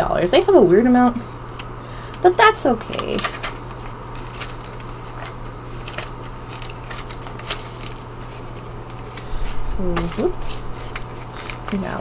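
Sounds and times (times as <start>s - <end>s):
steady low hum: 0.0s - 12.0s
paper bills rustling: 2.7s - 12.0s.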